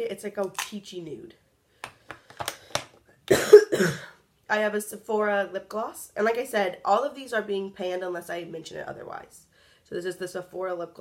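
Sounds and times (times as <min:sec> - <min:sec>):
woman coughing: 0:03.3 - 0:04.2.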